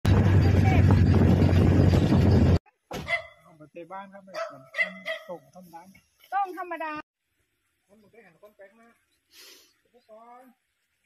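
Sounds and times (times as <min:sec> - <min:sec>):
wind buffeting microphone: 0:00.0 - 0:02.6.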